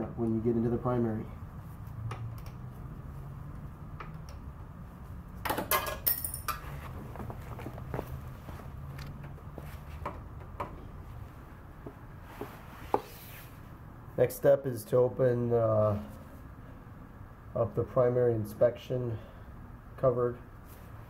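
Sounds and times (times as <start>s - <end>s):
low steady hum: 0.0s - 21.0s
metallic tool clinks and rattles: 5.7s - 6.6s.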